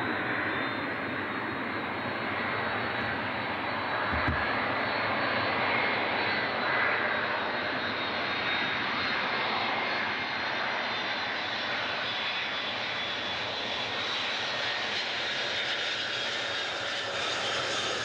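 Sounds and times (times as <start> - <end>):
jet airliner roar passing overhead: 0.0 - 18.0.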